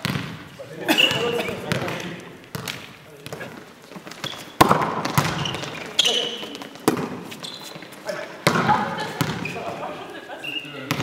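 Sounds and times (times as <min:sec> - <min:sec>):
volleyball smacks echoing: 0:00.0 - 0:00.4, 0:01.0 - 0:03.5, 0:04.1 - 0:05.9, 0:06.8 - 0:07.2, 0:08.4 - 0:09.7.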